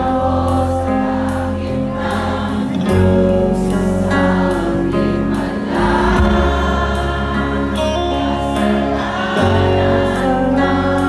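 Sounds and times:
crowd singing along: 0:00.0 - 0:11.0
live rock band playing: 0:00.0 - 0:11.0.

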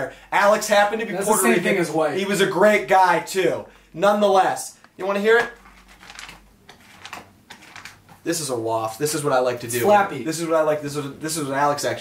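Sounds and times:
notebook pages riffled: 0:05.4 - 0:08.2.

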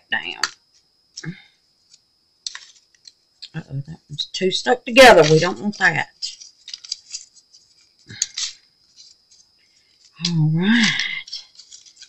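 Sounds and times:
paper slips rustling: 0:05.0 - 0:09.2.

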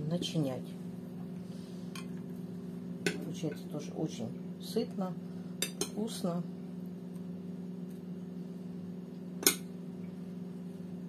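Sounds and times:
electrical hum of kitchen appliance: 0:00.0 - 0:11.0.

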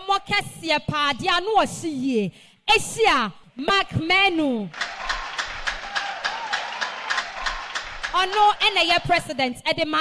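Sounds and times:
audience clapping in time: 0:04.7 - 0:09.3.

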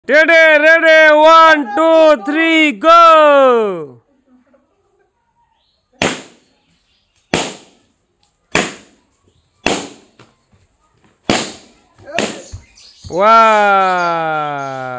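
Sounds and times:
balloons popping: 0:07.3 - 0:07.8, 0:08.5 - 0:09.0, 0:09.6 - 0:10.2, 0:11.3 - 0:12.5.

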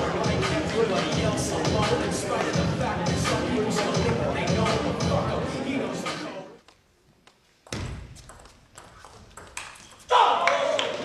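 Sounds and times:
table tennis ball hits: 0:07.6 - 0:10.9.

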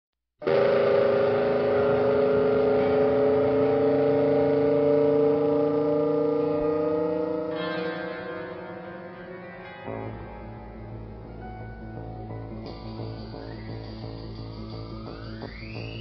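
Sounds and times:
loud rising drone: 0:00.4 - 0:16.0.

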